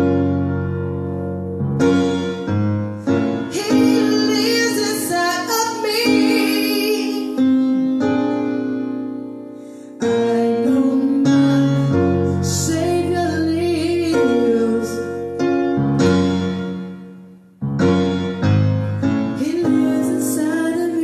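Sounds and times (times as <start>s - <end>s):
keyboard piano chords: 0.0s - 21.0s
woman singing slow song: 3.5s - 7.8s, 10.0s - 15.4s, 19.3s - 21.0s.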